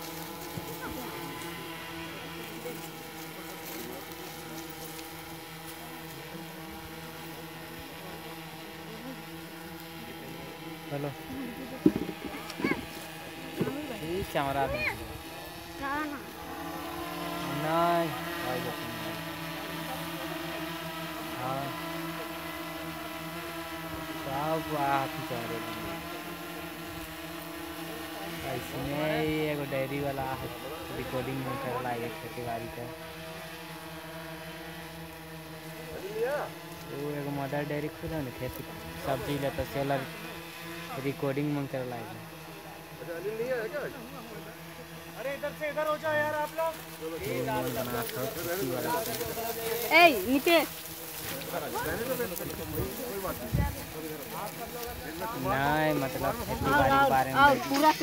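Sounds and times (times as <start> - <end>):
drone propellers humming: 0.0 - 58.0.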